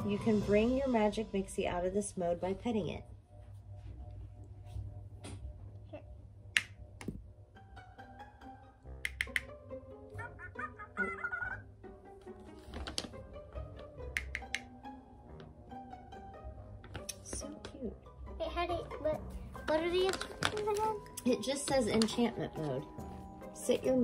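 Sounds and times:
electronic toy musical notes: 0:10.1 - 0:11.7
toy voice chattering: 0:10.2 - 0:11.6.

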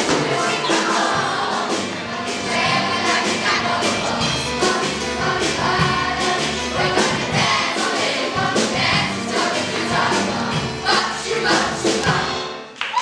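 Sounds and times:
children singing in chorus: 0:00.0 - 0:12.2
musical accompaniment: 0:00.0 - 0:13.0.

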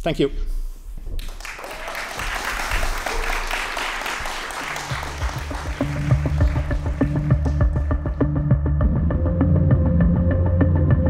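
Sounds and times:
audience applauding: 0:01.2 - 0:08.4
electronic music with low beat: 0:04.9 - 0:11.0.

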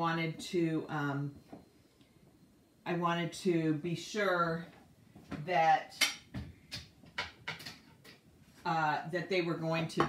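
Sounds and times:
dishes and utensils clinking: 0:06.0 - 0:08.2.

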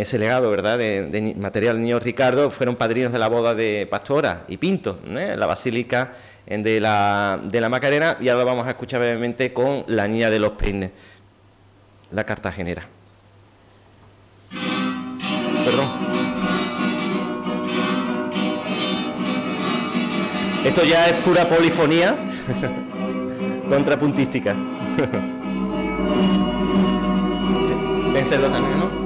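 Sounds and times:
room hum: 0:00.0 - 0:29.0
flamenco guitar over loudspeakers: 0:14.6 - 0:25.0.

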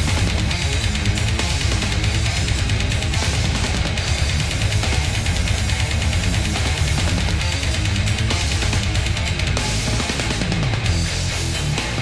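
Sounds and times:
bass guitar: 0:00.0 - 0:12.0
dense drumming with cymbals: 0:00.0 - 0:12.0
distorted electric guitars: 0:00.0 - 0:12.0.

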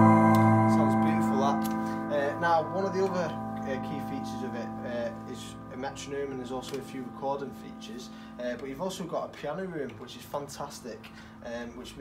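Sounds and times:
piano and choir chord ringing: 0:00.0 - 0:08.7.

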